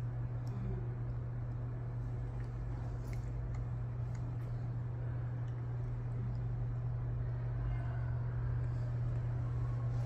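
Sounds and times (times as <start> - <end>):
faint rumble: 0.0 - 10.0
low hum: 0.0 - 10.0.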